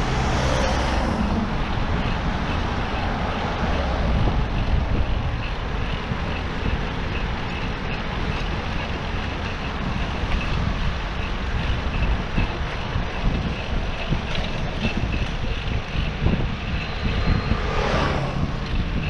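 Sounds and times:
road traffic: 0.0 - 19.0
wind on microphone: 0.0 - 19.0.

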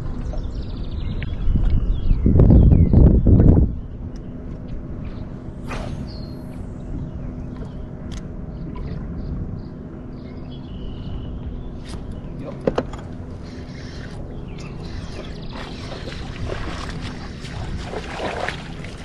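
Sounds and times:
faint steady hum: 0.0 - 19.0
wind buffeting microphone: 0.0 - 19.0
water noise: 3.3 - 19.0.

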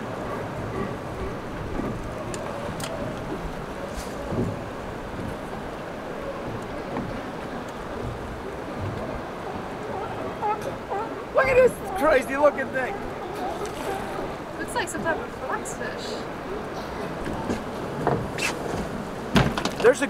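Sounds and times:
water on open sea: 0.0 - 20.0
wind: 0.0 - 20.0
faint clicks: 1.6 - 4.6, 6.5 - 8.2.

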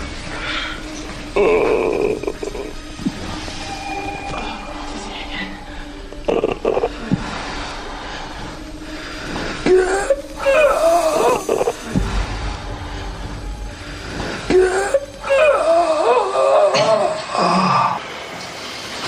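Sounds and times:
person moaning: 9.7 - 11.9, 14.5 - 18.0.

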